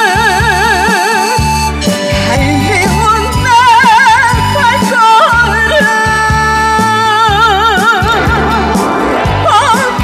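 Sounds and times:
steady beat and bass: 8.0 - 10.0.

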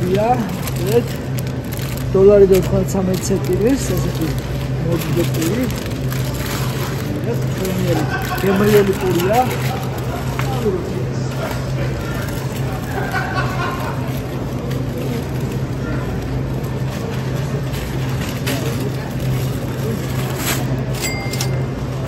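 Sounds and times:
faint indistinct voices: 0.0 - 22.0
plastic bags crinkling: 0.0 - 22.0
steady low hum: 0.0 - 22.0.

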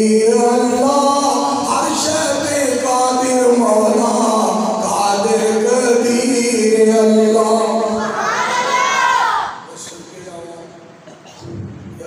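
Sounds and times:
man preaching in chanted delivery: 0.0 - 8.1.

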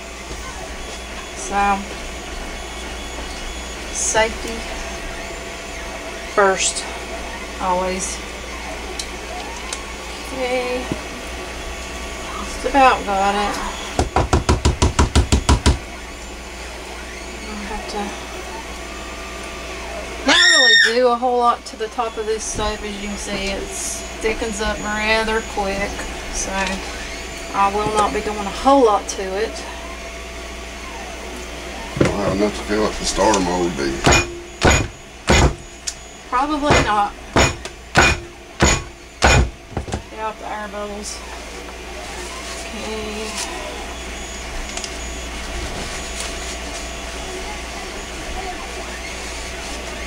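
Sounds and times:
soap mold knocking on wooden counter: 14.0 - 15.8.

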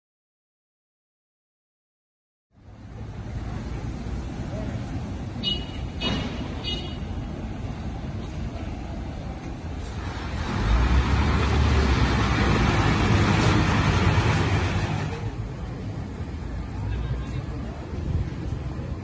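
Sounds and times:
street traffic: 2.5 - 19.0
truck driving past: 7.6 - 15.8.

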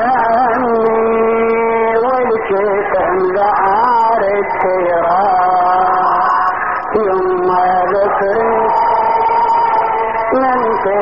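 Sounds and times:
man singing mournful chant: 0.0 - 9.5.

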